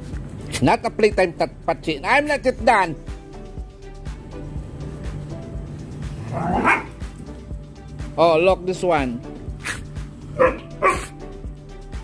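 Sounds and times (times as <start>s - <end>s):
background music with held tones: 0.0s - 12.0s
dog barking: 6.3s - 7.0s, 10.4s - 11.2s.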